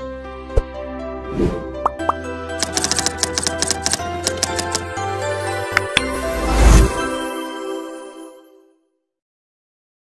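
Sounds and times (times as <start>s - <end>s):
keyboard typing clicks: 2.1s - 4.8s.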